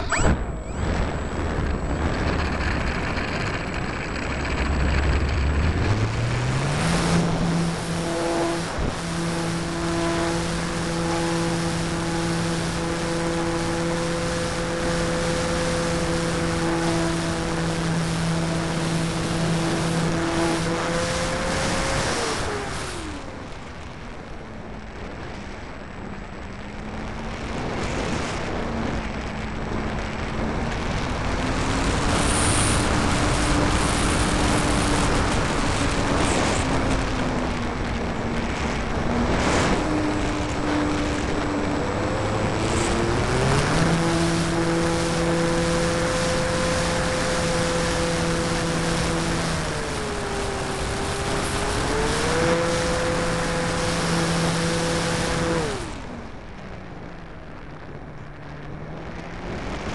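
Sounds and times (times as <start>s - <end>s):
model plane motor and propeller: 0.0s - 59.9s.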